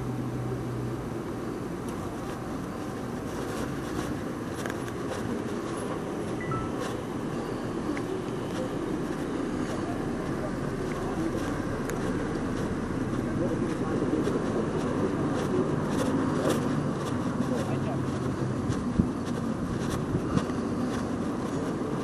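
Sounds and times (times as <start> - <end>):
car road and engine noise: 0.0 - 22.0
indistinct voices: 5.2 - 22.0.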